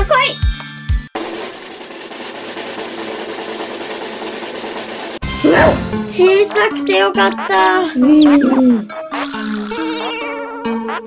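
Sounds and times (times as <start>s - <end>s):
snare drum roll: 1.2s - 6.2s.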